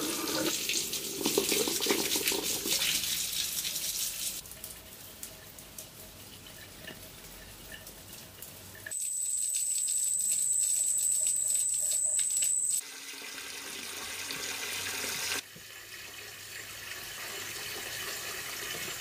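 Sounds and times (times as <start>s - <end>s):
water from hose splashing: 0.0s - 19.0s.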